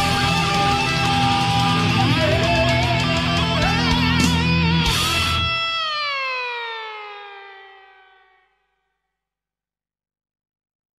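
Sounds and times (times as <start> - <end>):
electric guitar note sliding down: 0.0 - 8.6.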